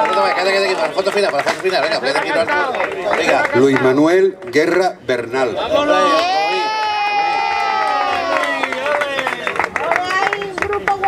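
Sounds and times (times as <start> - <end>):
scattered clapping: 0.0 - 5.4, 7.7 - 11.0
person cheering high: 6.0 - 9.3.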